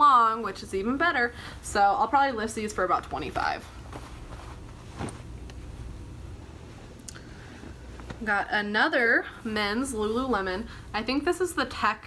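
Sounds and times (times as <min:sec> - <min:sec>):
cloth rustling: 0:00.0 - 0:11.9
steady low hum: 0:00.0 - 0:12.0.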